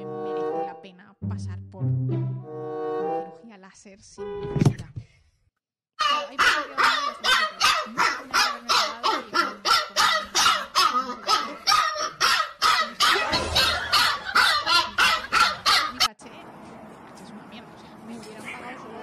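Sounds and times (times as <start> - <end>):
puppy barking: 6.0 - 16.1.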